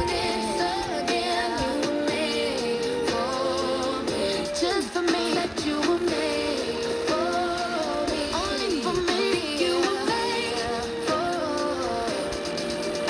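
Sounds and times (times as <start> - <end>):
song from small radio speaker: 0.0 - 13.0.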